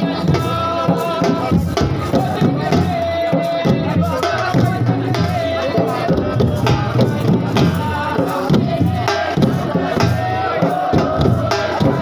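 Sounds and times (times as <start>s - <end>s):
drum beats: 0.0s - 12.0s
men chanting together: 0.0s - 12.0s.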